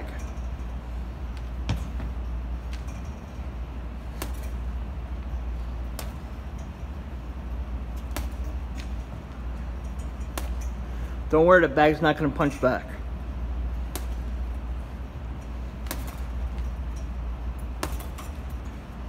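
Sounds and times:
low room hum: 0.0s - 19.0s
boxing gloves hitting punching bag: 1.5s - 3.0s, 4.0s - 6.8s, 7.9s - 10.8s, 13.7s - 14.5s, 15.4s - 18.7s.

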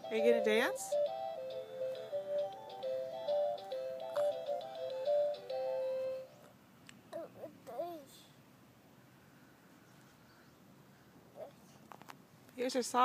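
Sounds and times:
electronic toy melody: 0.0s - 6.3s.

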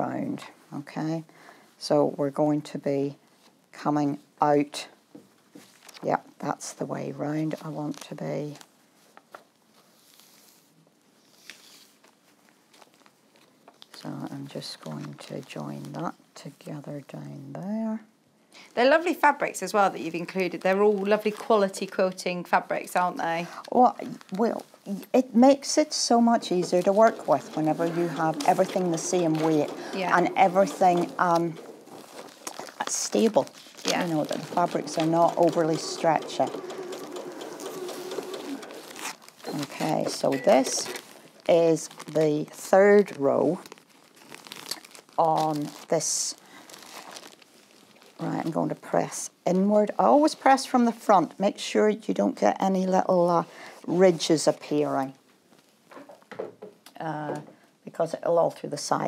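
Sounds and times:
fabric rustling: 7.0s - 16.6s, 19.7s - 49.0s
sewing machine running: 26.3s - 32.1s, 33.9s - 41.0s.

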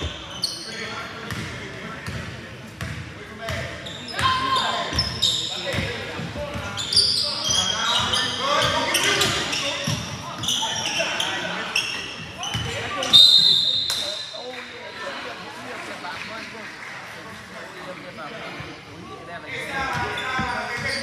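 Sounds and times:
sneakers squeaking: 0.0s - 14.4s, 18.1s - 21.0s.

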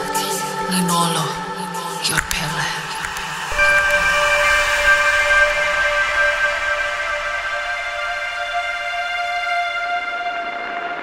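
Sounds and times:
ambient synthesizer pad chords: 0.0s - 11.0s.

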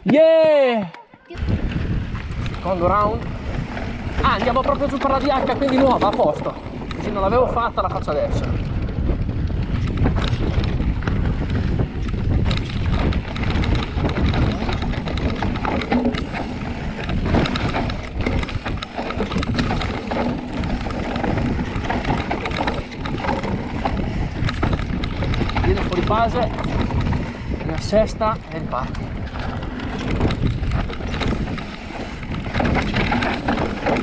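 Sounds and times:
wind buffeting microphone: 0.0s - 34.0s
mountain bike rumbling and rattling: 1.3s - 34.0s
bike knocking over bumps: 2.2s - 34.0s.

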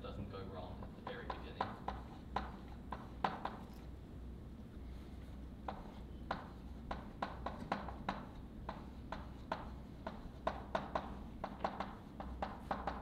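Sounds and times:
chalk tapping on blackboard: 0.8s - 3.7s, 5.6s - 13.0s.

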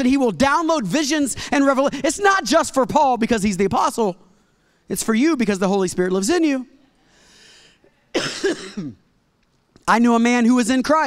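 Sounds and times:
faint breath in: 7.0s - 8.0s
man coughing into microphone: 8.1s - 9.1s.

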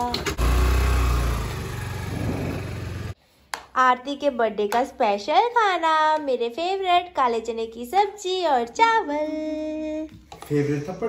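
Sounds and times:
scooter engine starting and running: 0.0s - 3.2s.

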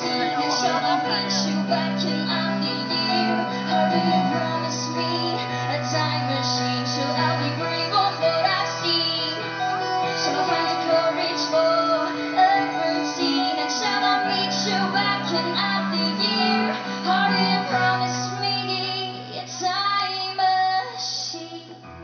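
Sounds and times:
keyboard: 0.0s - 22.0s
woman singing: 0.0s - 22.0s.

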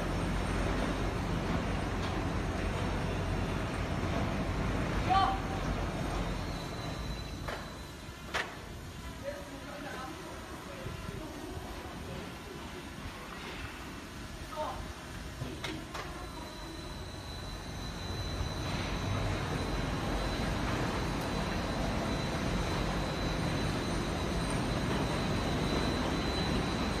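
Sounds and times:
construction hoist drive noise: 0.0s - 27.0s
high steady whine: 0.0s - 27.0s.

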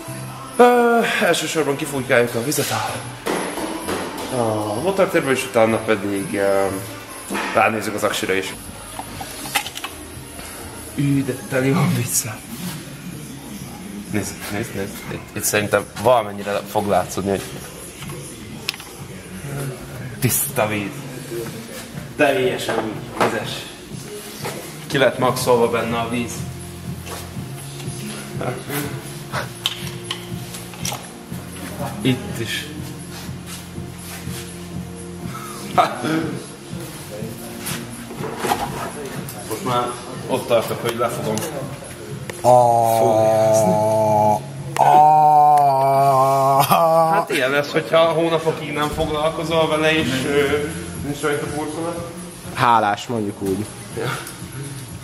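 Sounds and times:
indistinct talking: 3.9s - 34.0s, 34.8s - 55.0s.

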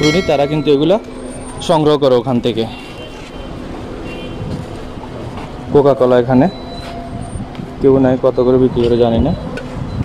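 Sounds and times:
man speaking: 0.0s - 2.8s, 7.8s - 9.5s
market crowd: 0.0s - 10.0s
road traffic: 0.0s - 10.0s.

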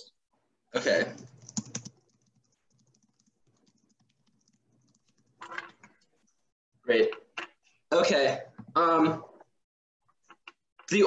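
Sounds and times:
typing on computer keyboard: 1.1s - 5.5s.

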